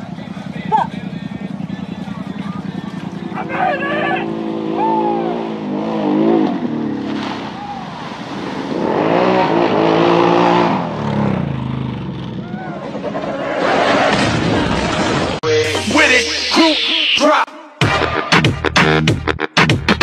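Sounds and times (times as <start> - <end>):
atv engine revving: 0.0 - 15.2.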